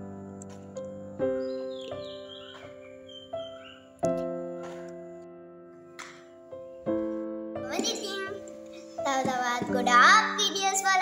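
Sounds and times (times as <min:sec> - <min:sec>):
background music: 0:00.0 - 0:11.0
girl singing: 0:07.7 - 0:11.0.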